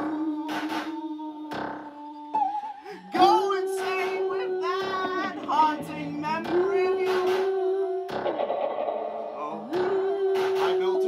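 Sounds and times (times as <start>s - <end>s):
woman singing wordless phrases: 0.0s - 8.4s, 9.5s - 11.0s.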